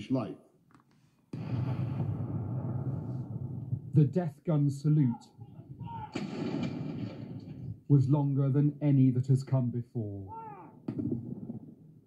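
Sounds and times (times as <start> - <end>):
saluting gun bang: 6.1 - 7.8.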